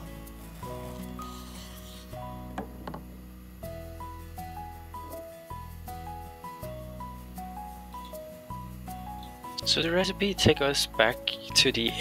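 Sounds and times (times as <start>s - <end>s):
knife knocking on cutting board: 2.6s - 3.1s
background music of held notes: 3.6s - 12.0s.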